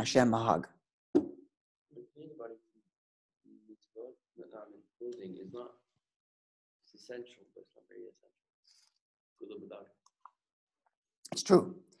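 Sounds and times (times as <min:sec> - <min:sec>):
sharp pop: 0:01.2 - 0:01.4
faint speech: 0:01.9 - 0:02.8, 0:03.5 - 0:05.7, 0:07.0 - 0:08.3, 0:09.4 - 0:09.9.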